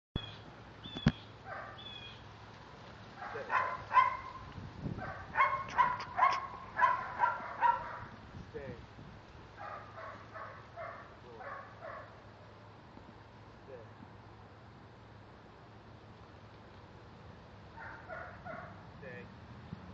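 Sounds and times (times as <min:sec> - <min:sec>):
dog barking: 0:01.5 - 0:01.8, 0:03.2 - 0:08.1, 0:09.6 - 0:12.2, 0:17.8 - 0:18.8.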